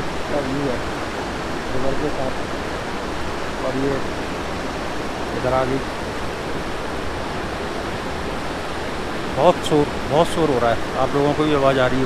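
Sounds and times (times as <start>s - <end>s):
river rushing over boulders: 0.0s - 12.0s.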